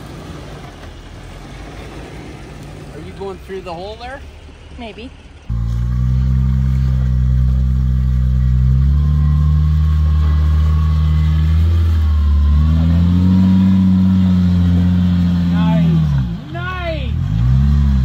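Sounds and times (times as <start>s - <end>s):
engine pulling at low revs: 0.0s - 18.0s
engine revving: 0.0s - 18.0s.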